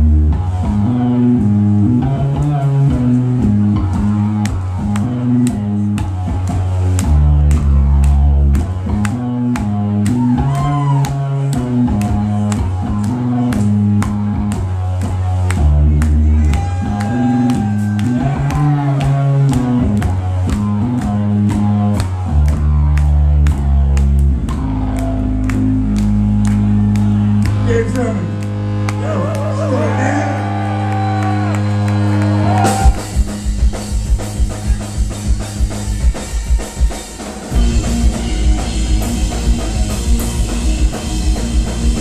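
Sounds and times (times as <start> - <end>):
low electric guitar and bass riff: 0.0 - 36.5, 37.5 - 42.0
drum kit beat: 0.0 - 42.0
rock band playing live: 0.0 - 42.0.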